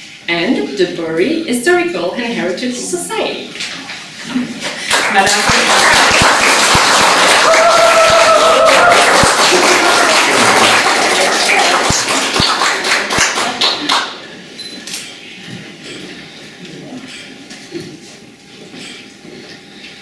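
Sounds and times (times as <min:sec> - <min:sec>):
audience applauding: 0:04.6 - 0:14.2.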